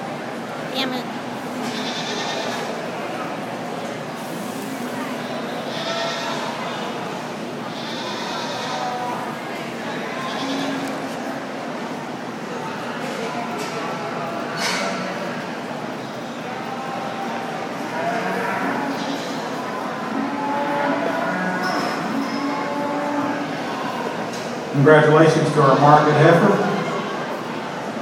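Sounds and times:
murmur of crowd chatter: 0.0 - 28.0
goats bleating: 1.6 - 2.7, 5.4 - 7.0, 7.7 - 9.1, 10.1 - 11.0, 17.8 - 23.7.

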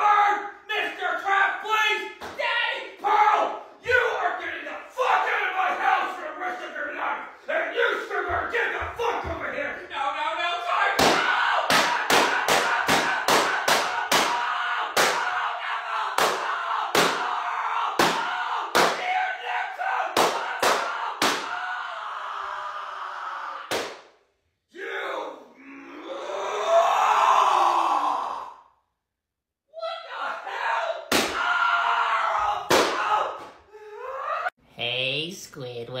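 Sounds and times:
long yell: 0.0 - 6.7, 10.0 - 23.8, 24.7 - 28.8, 29.7 - 34.6.

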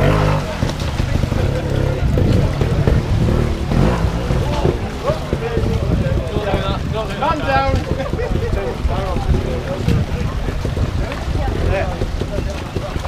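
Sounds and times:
motorcycle engine at low revs: 0.0 - 13.0
stream rushing: 0.0 - 13.0.

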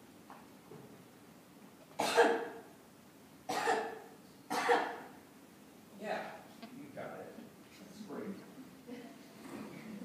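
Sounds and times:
person coughing: 2.0 - 2.5, 3.5 - 5.0.

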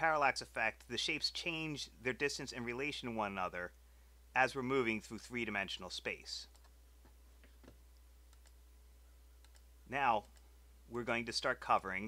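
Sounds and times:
low electrical hum: 0.0 - 12.0
computer mouse clicks: 6.5 - 6.8, 7.4 - 8.6, 9.4 - 10.5.

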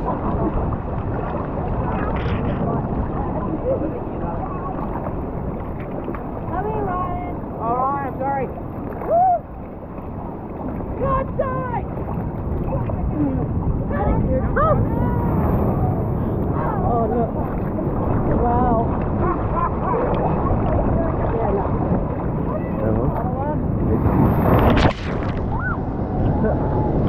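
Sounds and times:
water sloshing and lapping: 0.0 - 27.0.

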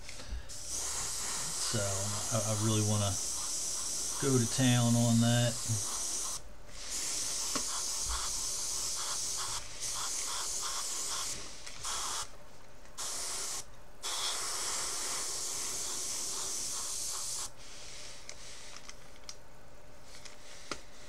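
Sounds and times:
airbrush spraying hiss: 0.5 - 12.3, 13.0 - 18.8.

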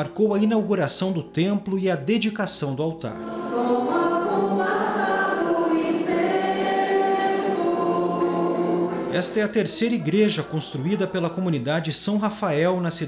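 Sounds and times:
choir singing slow chant: 3.2 - 11.1.

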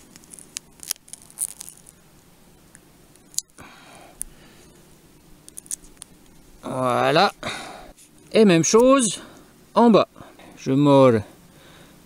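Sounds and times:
duct tape crackling: 0.0 - 7.4.

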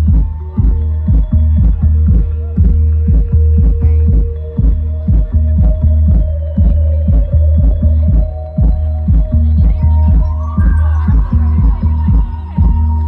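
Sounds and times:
heavy bass line: 0.0 - 13.0
kick drum: 0.0 - 13.0.

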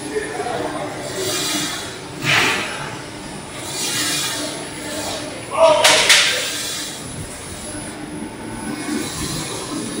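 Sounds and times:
rotary kiln machinery noise: 0.0 - 10.0.

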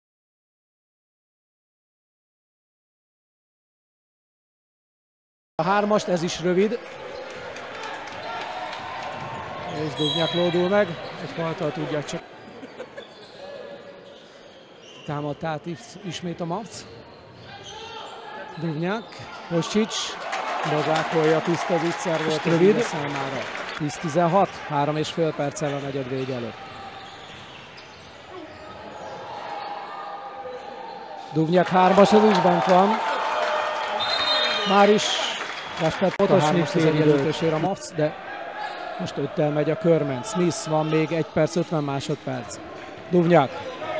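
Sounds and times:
indoor arena noise: 5.6 - 43.9
man commentating: 34.6 - 38.1.

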